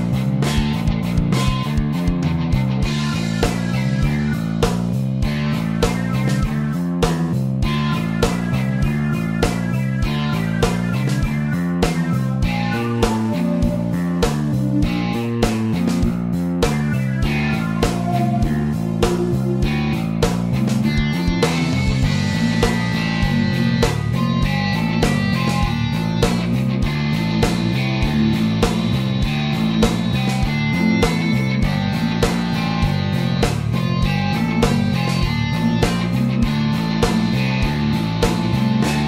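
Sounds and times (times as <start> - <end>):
drums with steady beat: 0.0 - 39.0
electric guitar riffing: 0.0 - 39.0.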